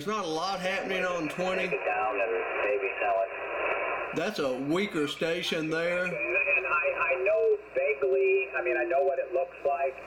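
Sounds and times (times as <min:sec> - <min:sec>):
static hiss: 0:00.0 - 0:10.0
thin muffled radio speech: 0:00.8 - 0:04.4, 0:05.4 - 0:10.0.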